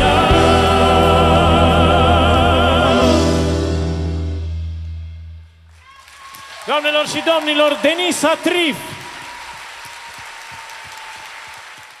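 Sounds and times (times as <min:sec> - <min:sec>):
audience applauding: 0:05.8 - 0:12.0.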